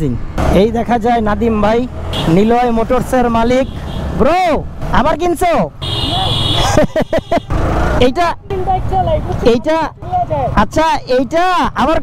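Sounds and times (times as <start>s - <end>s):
rider's voice: 0.0s - 6.7s, 7.9s - 12.0s
road and wind noise: 0.0s - 12.0s.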